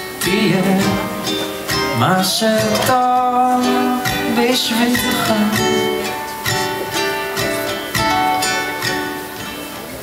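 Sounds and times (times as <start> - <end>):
ukulele strumming chords: 0.0 - 10.0.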